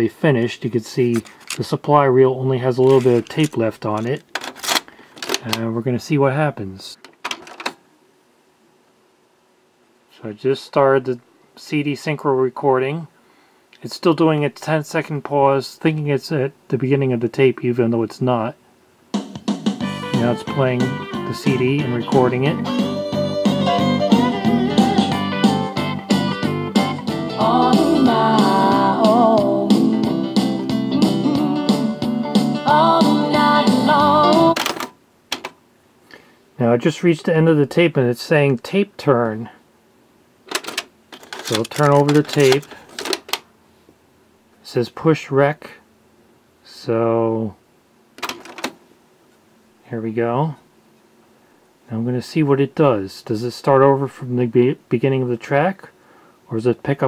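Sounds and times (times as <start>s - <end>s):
country song with guitar and vocals: 20.1s - 25.7s, 26.3s - 34.6s.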